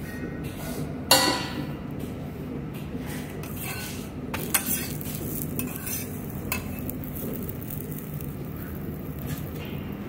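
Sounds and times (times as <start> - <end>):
metal spatula scraping pan: 3.4 - 5.0, 5.6 - 6.8
omelette sizzling on griddle: 3.4 - 10.0.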